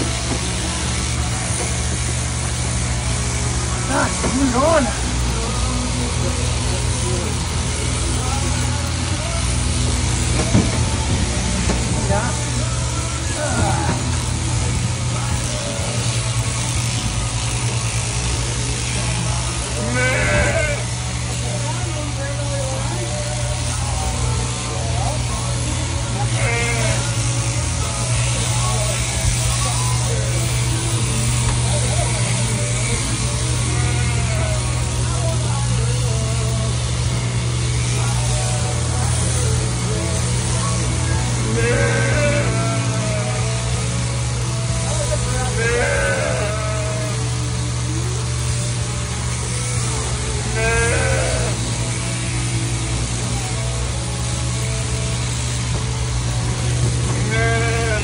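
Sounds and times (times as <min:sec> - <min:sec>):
sheep-shearing machine humming: 0:00.0 - 0:58.0
sheep bleating: 0:17.4 - 0:21.4, 0:26.1 - 0:47.8, 0:48.5 - 0:55.6, 0:57.0 - 0:58.0.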